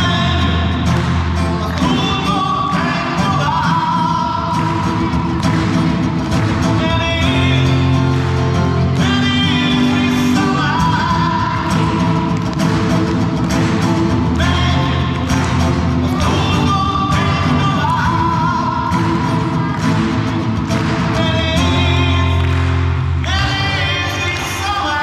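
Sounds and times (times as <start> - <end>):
person singing: 0.0 - 5.4, 6.5 - 12.6, 14.3 - 25.0
strummed acoustic guitar: 0.0 - 25.0.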